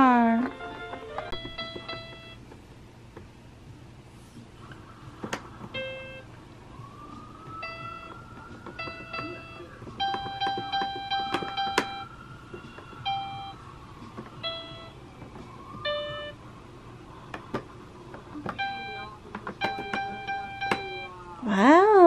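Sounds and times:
toy playing electronic notes: 0.0s - 2.5s, 4.8s - 16.6s, 18.4s - 21.4s.

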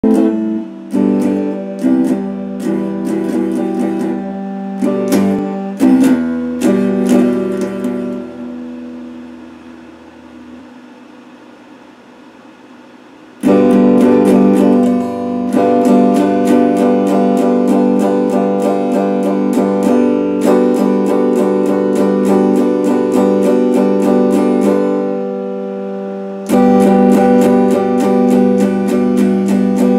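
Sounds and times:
electric guitar picked notes: 0.0s - 11.0s, 13.4s - 29.9s.

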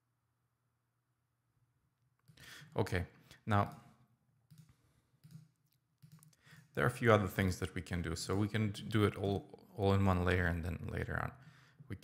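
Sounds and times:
faint computer mouse clicks: 4.5s - 6.7s.

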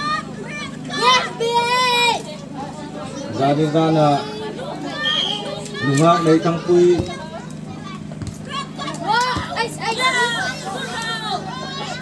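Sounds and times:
distant shouts of players: 3.1s - 12.0s
ball being kicked thump: 6.9s - 7.2s.

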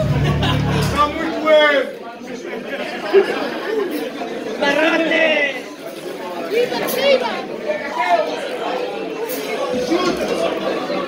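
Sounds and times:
people chattering: 0.0s - 11.0s.

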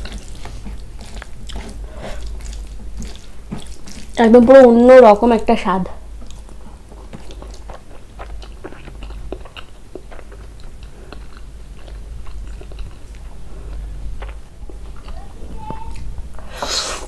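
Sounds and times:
person chewing food: 0.0s - 4.2s, 6.1s - 17.0s
low steady hum: 0.0s - 17.0s.

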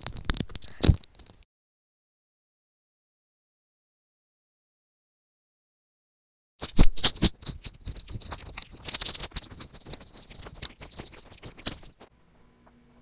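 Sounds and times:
plastic sheet crinkling: 0.0s - 1.4s, 6.6s - 12.1s.

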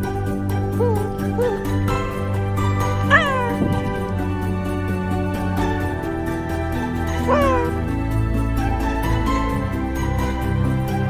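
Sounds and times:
background music: 0.0s - 11.0s
cat meowing: 3.1s - 3.9s, 7.3s - 7.8s.

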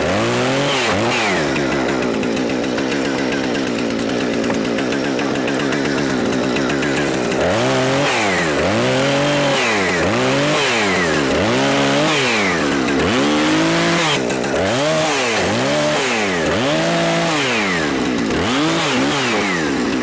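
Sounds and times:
chainsaw cutting wood: 0.0s - 20.0s.

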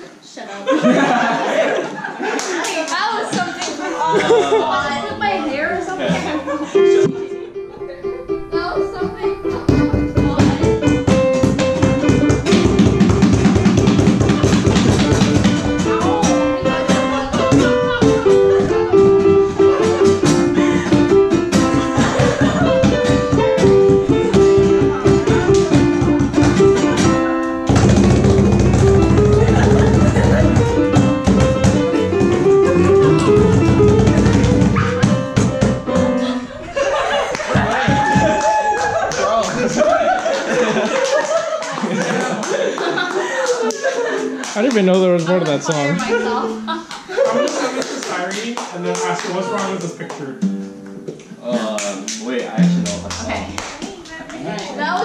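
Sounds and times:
acoustic guitar: 4.3s - 40.8s, 49.0s - 55.0s
digital piano: 4.4s - 41.1s
cajon beat: 6.8s - 55.0s.

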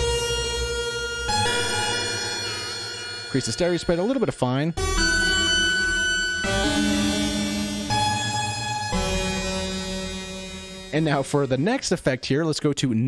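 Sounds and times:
dissonant creepy synthesizer chords: 0.0s - 12.1s.

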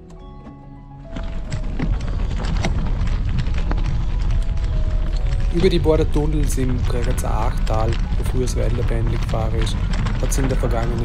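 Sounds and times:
bike tyres clicking and rattling: 0.0s - 11.0s
wind rumble on microphone: 1.0s - 11.0s.

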